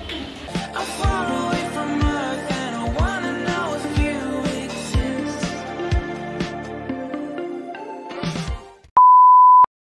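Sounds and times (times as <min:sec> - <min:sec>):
outro music: 0:00.5 - 0:08.8
electronic beep: 0:09.0 - 0:09.7.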